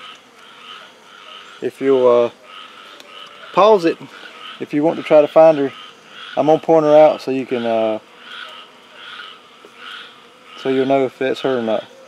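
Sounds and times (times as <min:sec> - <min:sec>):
chorus of pulsing animal calls: 0:00.0 - 0:12.0.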